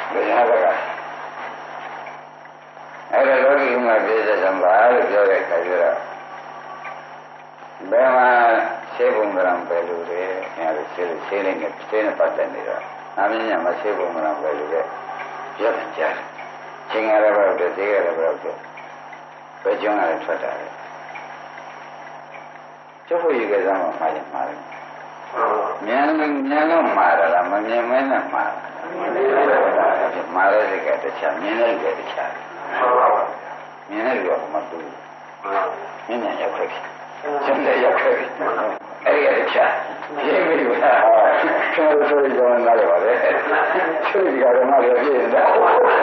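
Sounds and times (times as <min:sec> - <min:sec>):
tape hiss and hum: 0:00.0 - 0:46.0.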